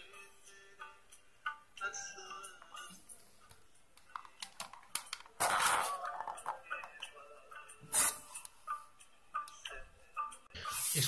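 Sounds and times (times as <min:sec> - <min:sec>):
faint song from phone: 0:00.0 - 0:11.0.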